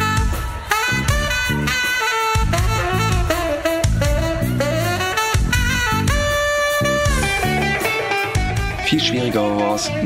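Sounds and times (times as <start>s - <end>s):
drums: 0.0s - 10.0s
rock band playing live: 0.0s - 10.0s
electric guitar: 2.4s - 10.0s.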